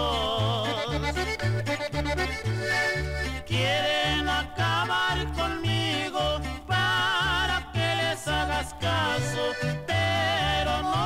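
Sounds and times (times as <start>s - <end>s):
accordion melody: 0.0s - 11.0s
bass line: 0.0s - 11.0s.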